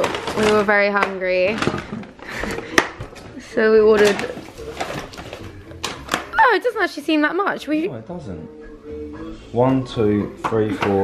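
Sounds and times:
woman's voice: 0.0 - 1.7, 3.4 - 4.4, 6.3 - 7.9.

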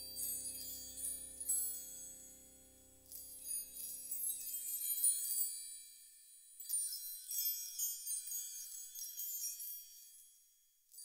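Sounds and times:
sustained low chord: 0.0 - 4.0.

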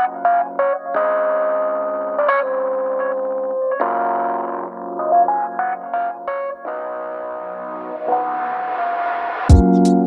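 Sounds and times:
lo-fi background music: 0.0 - 10.0.

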